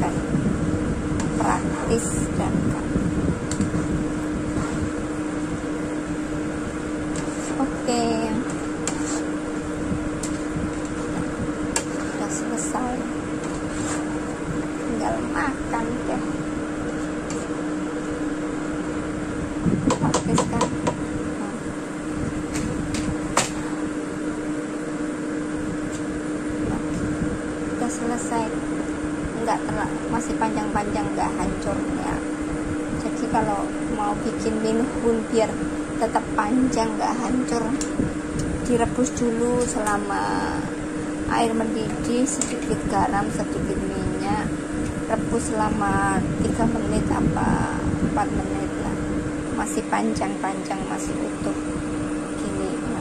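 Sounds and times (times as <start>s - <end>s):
steady mechanical hum: 0.0s - 53.0s
utensils scraping noodles in wok: 8.8s - 9.3s, 13.5s - 14.2s.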